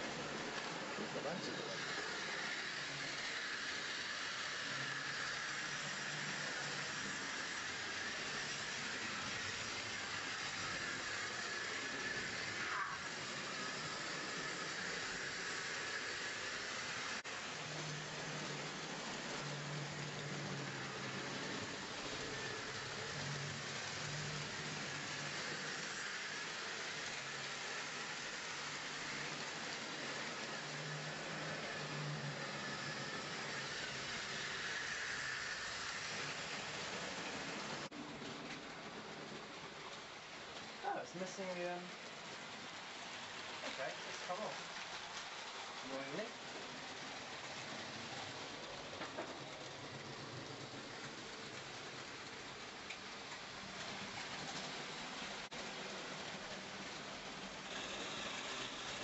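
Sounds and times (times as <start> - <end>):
model train motor whirring: 0.0 - 59.0.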